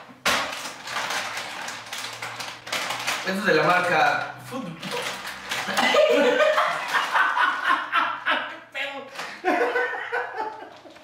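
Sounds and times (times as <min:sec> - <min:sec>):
plastic snack bag crinkling: 0:00.1 - 0:07.6.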